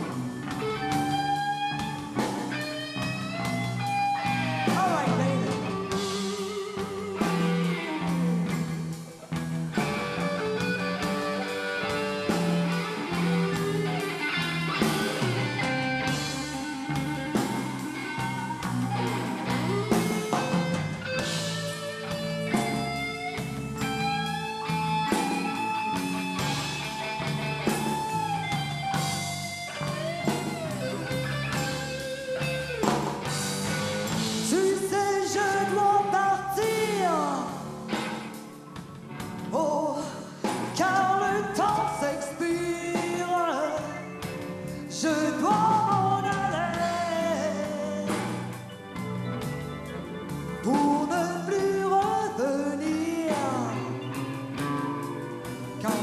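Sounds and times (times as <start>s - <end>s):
blues band playing: 0.0s - 56.0s.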